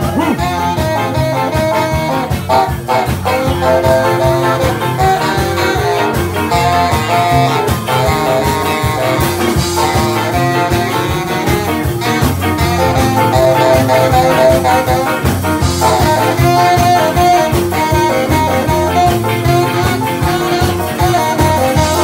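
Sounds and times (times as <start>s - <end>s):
live ska band playing: 0.0s - 22.0s
saxophone section melody: 0.0s - 22.0s.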